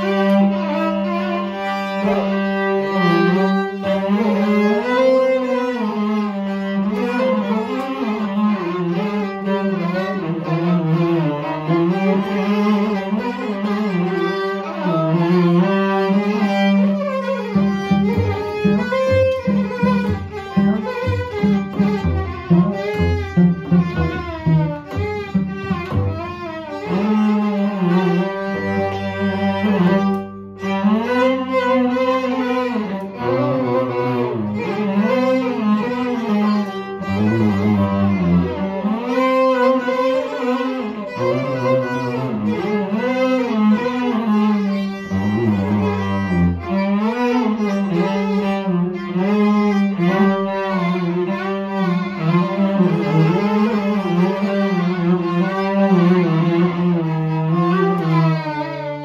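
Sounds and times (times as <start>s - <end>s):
cello low notes: 0.0s - 59.0s
violin melody: 0.0s - 59.0s.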